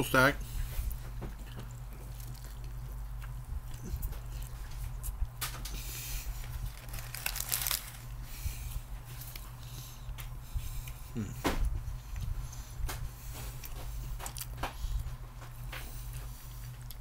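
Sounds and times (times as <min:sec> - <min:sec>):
steady low hum: 0:00.0 - 0:17.0
man chewing crunchy food: 0:00.4 - 0:17.0.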